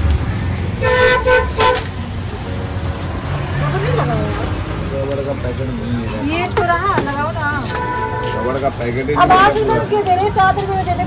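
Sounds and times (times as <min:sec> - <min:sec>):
rumble of traffic: 0:00.0 - 0:11.0
vehicle horn tooting: 0:00.8 - 0:01.9, 0:07.6 - 0:09.6.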